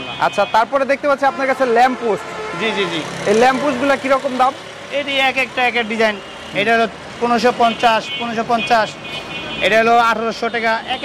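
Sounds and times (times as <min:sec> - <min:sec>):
faint street noise: 0:00.0 - 0:11.0
man talking: 0:00.1 - 0:11.0.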